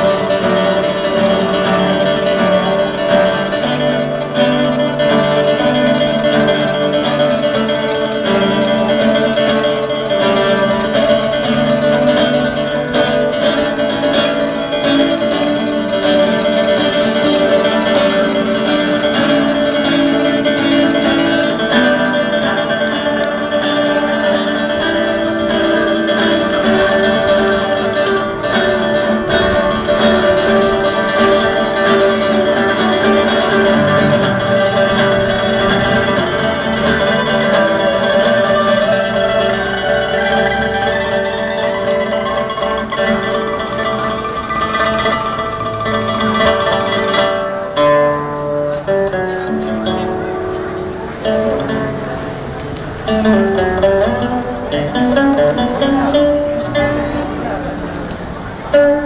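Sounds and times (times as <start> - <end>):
plucked guitar-like music: 0.0 - 59.0.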